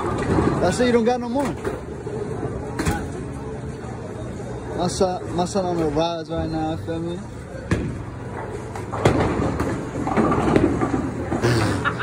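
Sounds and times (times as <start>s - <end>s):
bowling ball rolling: 7.7s - 12.0s.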